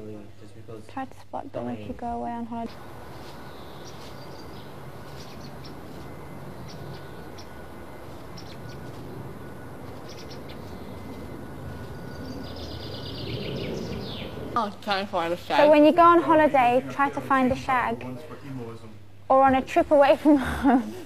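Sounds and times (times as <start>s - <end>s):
outdoor background noise: 0.0s - 21.0s
bird warbling: 2.7s - 14.6s
small birds chirping: 2.7s - 14.6s.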